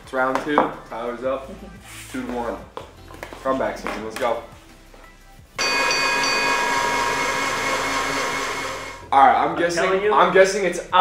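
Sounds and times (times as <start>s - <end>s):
blender motor whining: 5.6s - 9.0s.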